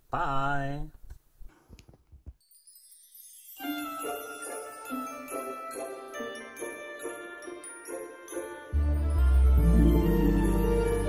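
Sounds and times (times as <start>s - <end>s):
tune with jingling bells: 2.4s - 11.0s.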